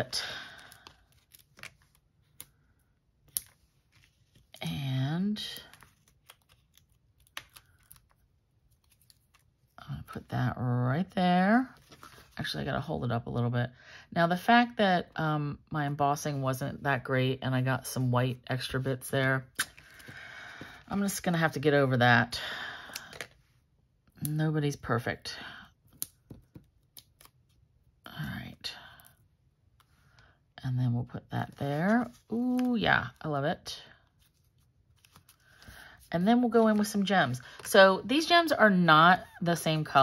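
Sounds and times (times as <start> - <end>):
paper handling: 5.6 - 9.7, 34.2 - 37.7.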